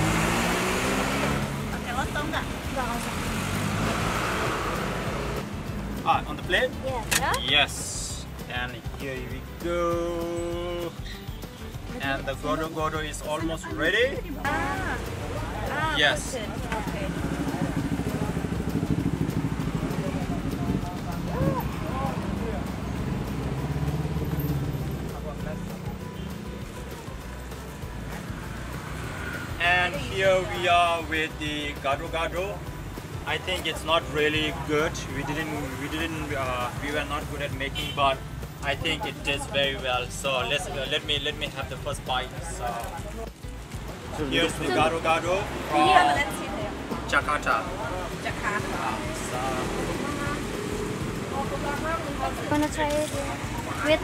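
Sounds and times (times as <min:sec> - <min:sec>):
vehicle passing: 0:00.0 - 0:07.3, 0:13.5 - 0:54.0
road traffic noise: 0:00.0 - 0:54.0.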